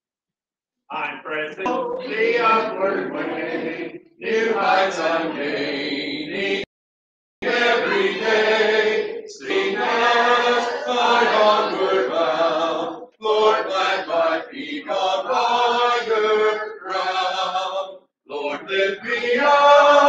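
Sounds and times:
congregation singing a hymn: 1.6s - 6.7s, 7.4s - 20.0s.

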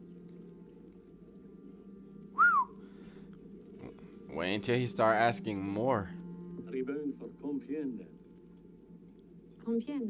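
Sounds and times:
faint steady hum: 0.0s - 10.0s
short rising and falling whistle: 2.4s - 2.7s.

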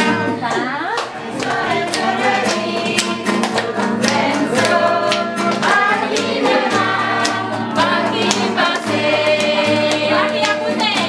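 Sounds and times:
group singing: 0.5s - 11.0s
hands clapping in time: 0.5s - 11.0s.

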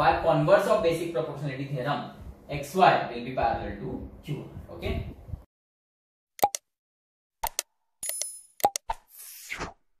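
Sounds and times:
short clicks and pops: 6.4s - 6.7s, 7.4s - 9.0s.

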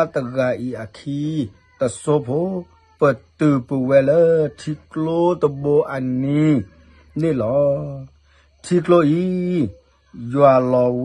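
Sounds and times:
man speaking: 0.0s - 8.0s.

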